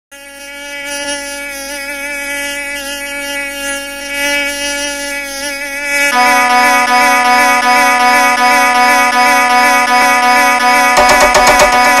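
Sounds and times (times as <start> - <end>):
mosquito buzzing: 0.1 - 12.0.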